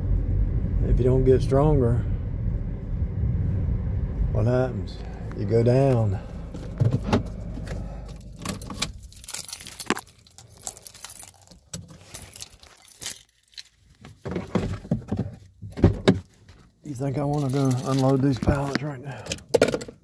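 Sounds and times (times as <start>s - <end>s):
low engine hum: 0.0s - 10.8s
car keys jangling: 6.0s - 14.0s, 16.9s - 19.9s.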